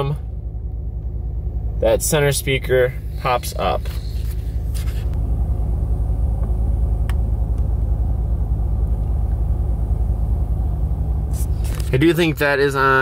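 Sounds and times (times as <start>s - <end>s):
car engine idling: 0.0s - 13.0s.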